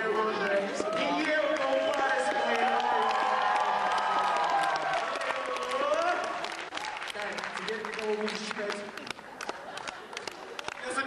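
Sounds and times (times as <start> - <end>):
audience clapping and cheering: 0.0 - 11.0.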